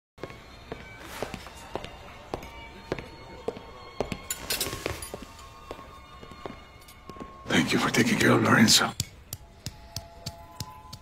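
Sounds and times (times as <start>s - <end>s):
slow footsteps: 0.2s - 7.4s.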